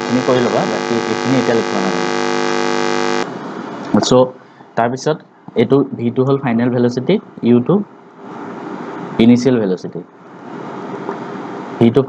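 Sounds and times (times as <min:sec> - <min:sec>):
loud electrical buzz: 0:00.0 - 0:03.4.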